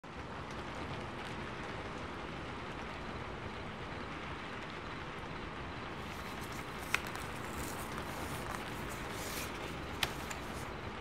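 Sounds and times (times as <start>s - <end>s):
ambient noise hiss: 0.2s - 11.0s.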